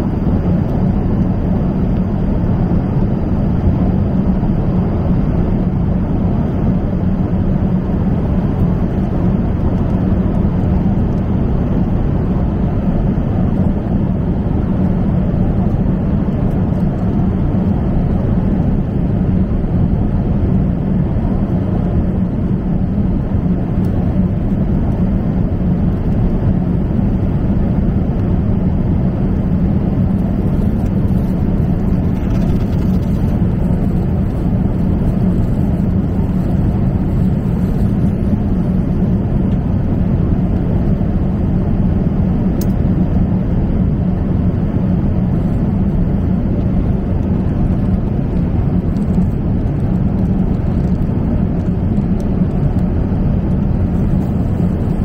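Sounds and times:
jet airliner cabin noise: 0:00.0 - 0:55.0.

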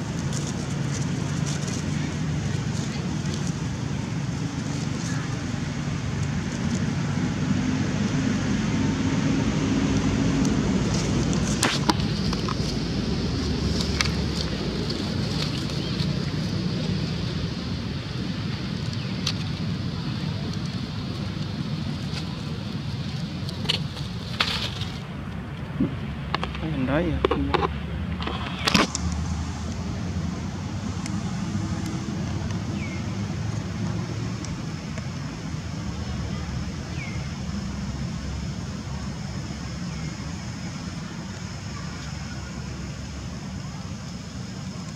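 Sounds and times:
low outdoor rumble: 0:00.0 - 0:44.9.

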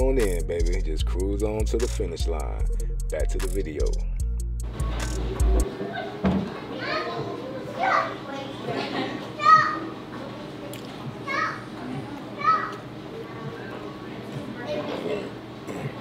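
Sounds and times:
murmur of background chatter: 0:04.7 - 0:16.0
children calling and shouting: 0:04.8 - 0:16.0.

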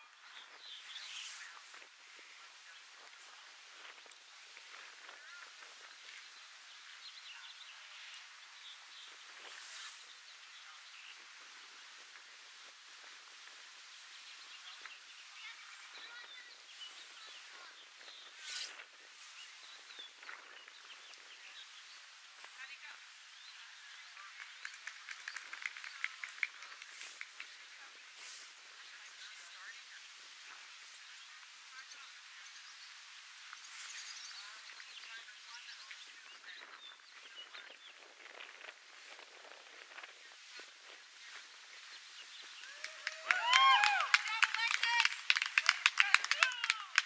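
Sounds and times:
scattered light applause: 0:23.8 - 0:28.0, 0:42.5 - 0:47.0
spectators clapping: 0:24.2 - 0:27.5, 0:42.6 - 0:47.0
people cheering: 0:42.6 - 0:47.0.

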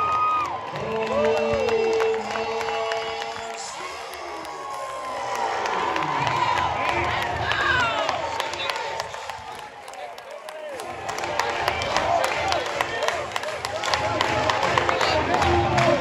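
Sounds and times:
crowd cheering: 0:00.0 - 0:16.0
fans whooping and yelling: 0:00.0 - 0:16.0.

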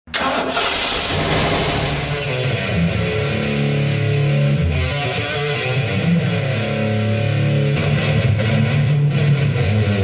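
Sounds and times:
car engine starting and running: 0:00.1 - 0:02.4.

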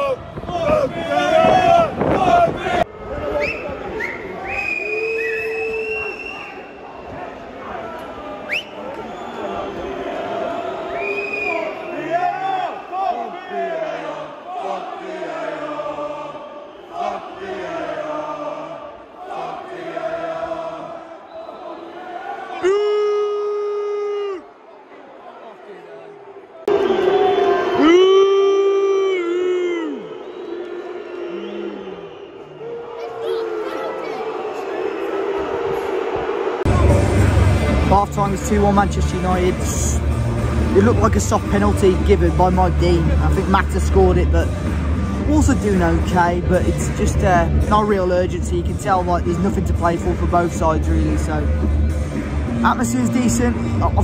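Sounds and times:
crowd singing and chanting: 0:00.0 - 0:02.9, 0:12.8 - 0:22.4.

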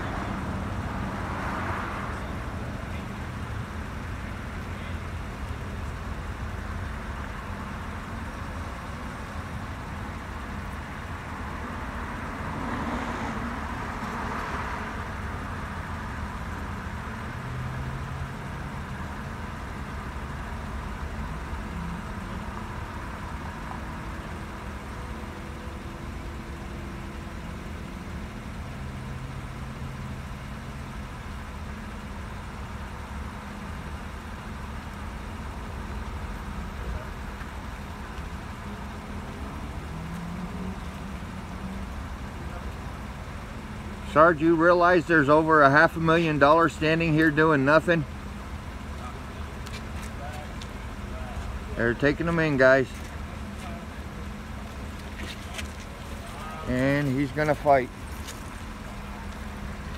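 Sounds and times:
road traffic: 0:00.0 - 0:59.9
vehicle engines idling: 0:00.0 - 0:59.9.

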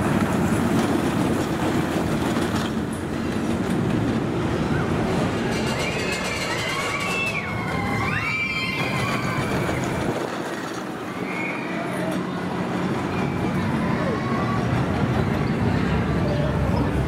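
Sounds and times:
roller coaster train rumbling: 0:00.0 - 0:17.0
riders screaming: 0:04.7 - 0:10.2, 0:11.0 - 0:12.2.

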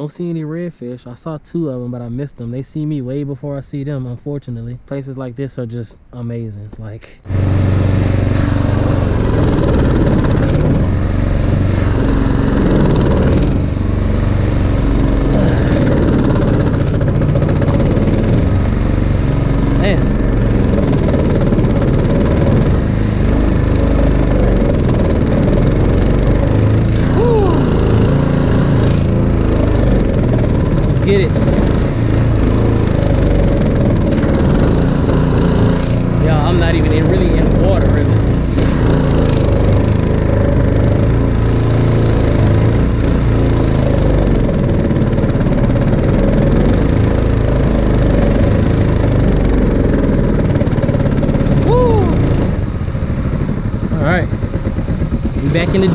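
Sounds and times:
outboard motor running: 0:07.2 - 0:55.9.

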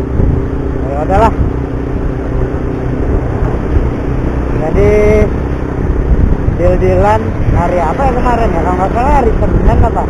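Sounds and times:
motorcycle engine running: 0:00.0 - 0:10.0
wind rumble on microphone: 0:00.0 - 0:10.0.

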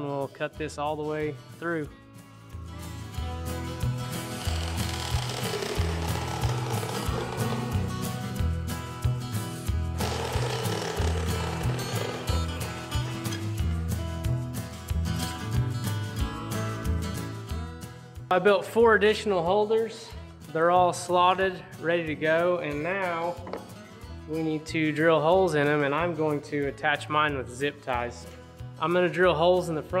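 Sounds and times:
background music with bass line: 0:01.4 - 0:18.4
jigsaw cutting plastic pipe: 0:04.1 - 0:08.2, 0:10.0 - 0:13.4.

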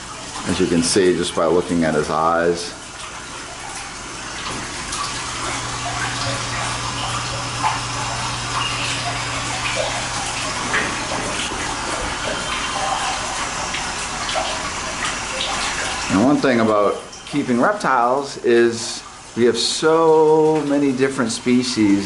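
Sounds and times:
running water rushing: 0:00.0 - 0:22.0.

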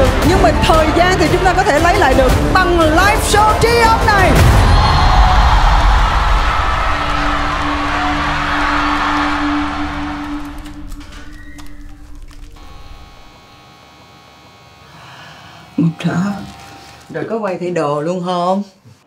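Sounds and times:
stadium crowd cheering: 0:03.5 - 0:11.9.

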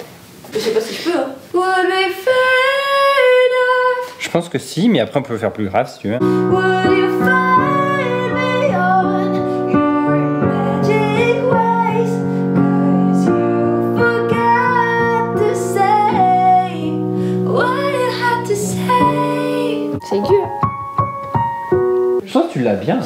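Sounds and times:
keyboard chords: 0:06.2 - 0:22.3
steady beat: 0:20.0 - 0:22.2.

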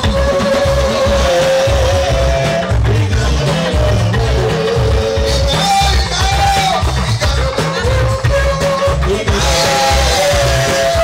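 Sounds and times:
live band music: 0:00.0 - 0:11.0
pulsing bass beat: 0:00.0 - 0:11.0.

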